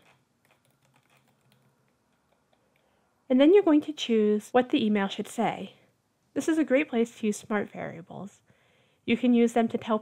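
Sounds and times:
faint keyboard typing: 0:00.0 - 0:02.9.

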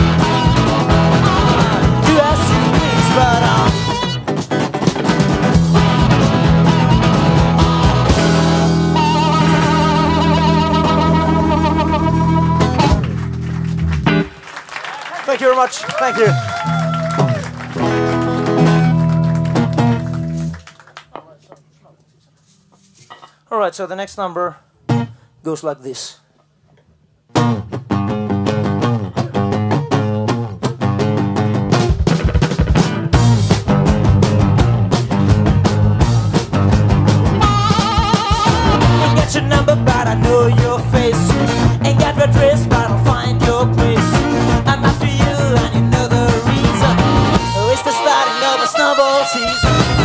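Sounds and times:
live rock band final chord: 0:00.0 - 0:14.3, 0:31.7 - 0:50.0
drums: 0:00.0 - 0:14.4, 0:27.3 - 0:50.0
strummed guitars: 0:00.0 - 0:14.4, 0:16.6 - 0:20.6, 0:27.3 - 0:50.0.

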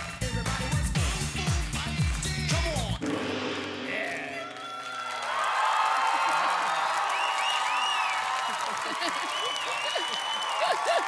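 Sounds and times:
audience applauding: 0:04.0 - 0:11.0
crowd cheering and whooping: 0:04.1 - 0:11.0.

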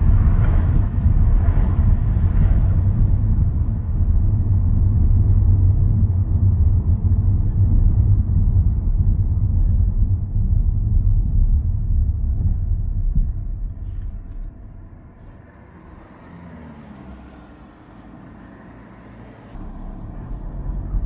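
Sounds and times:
car engine and road rumble: 0:00.0 - 0:21.0.

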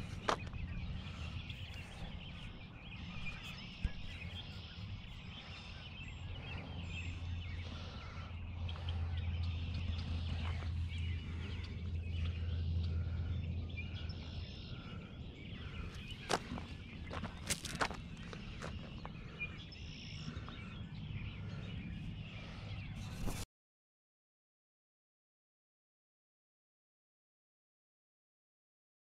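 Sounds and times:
small birds chirping: 0:00.0 - 0:23.4
steady low rumble: 0:00.0 - 0:23.4.

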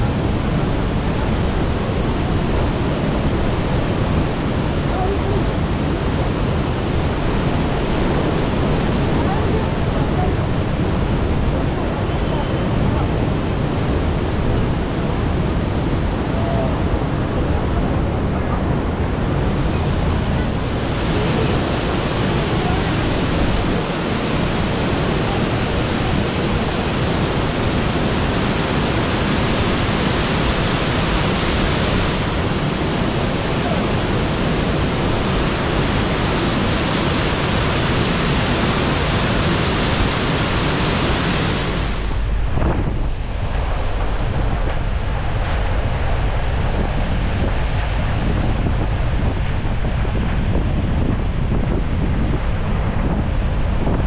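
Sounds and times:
waterfall rushing: 0:00.0 - 0:42.7
wind noise on microphone: 0:00.0 - 0:54.0.

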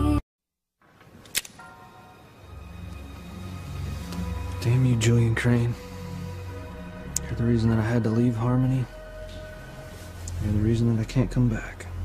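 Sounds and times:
sharp click: 0:01.2 - 0:01.6
dramatic underscore music: 0:01.6 - 0:12.0.

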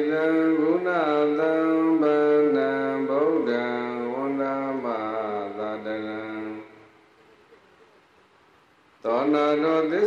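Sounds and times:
man chanting into microphone: 0:00.0 - 0:06.9, 0:09.0 - 0:10.0.

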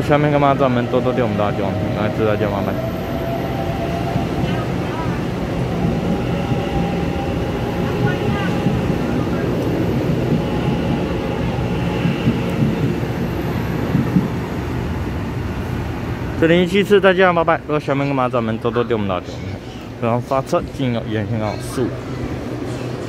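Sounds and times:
train wheels rumbling on rail: 0:00.0 - 0:17.7.

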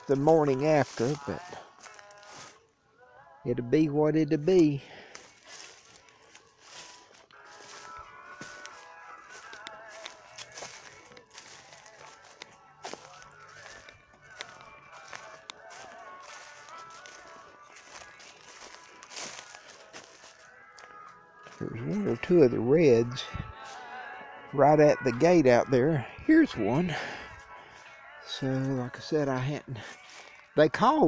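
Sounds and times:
footsteps crunching dry leaves: 0:00.0 - 0:02.6, 0:04.5 - 0:24.1, 0:29.8 - 0:30.5.

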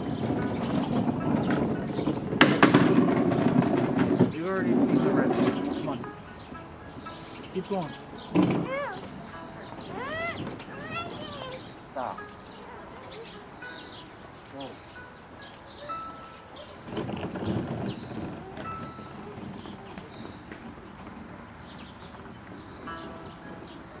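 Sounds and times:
high chirping calls: 0:04.0 - 0:24.0.

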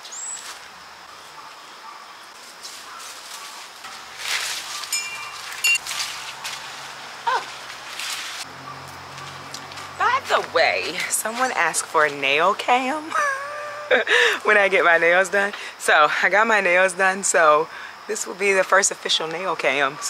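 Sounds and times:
birds chirping: 0:00.0 - 0:13.1
vine leaves rustling: 0:00.0 - 0:15.5.

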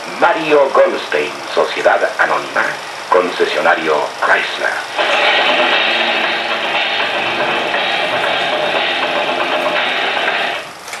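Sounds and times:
loud rasping film soundtrack noise: 0:00.0 - 0:11.0.

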